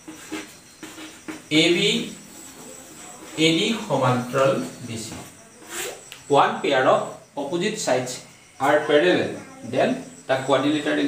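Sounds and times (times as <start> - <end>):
chalk scratching on blackboard: 5.6 - 6.0.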